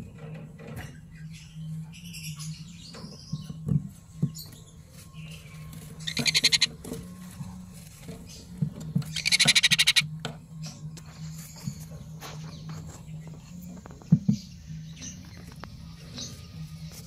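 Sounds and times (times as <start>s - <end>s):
faint bird chirps: 4.3s - 6.8s, 9.1s - 17.0s
bird chick begging calls: 6.0s - 6.8s, 9.1s - 10.1s.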